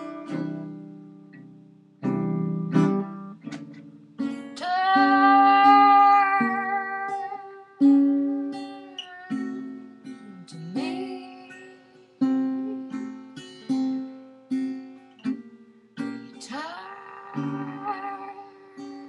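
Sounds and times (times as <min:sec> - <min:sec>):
strummed guitar chords: 0:00.0 - 0:19.0
woman singing: 0:04.5 - 0:13.0, 0:16.2 - 0:19.0.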